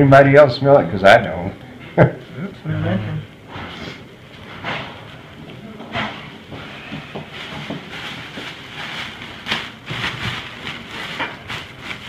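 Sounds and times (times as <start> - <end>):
gauze and paper drapes rustling: 5.0 - 12.0
sharp paper crackles: 7.3 - 12.0.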